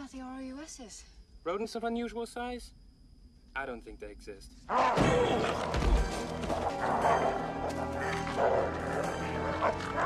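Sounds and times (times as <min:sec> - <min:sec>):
film score music: 0:04.7 - 0:10.0.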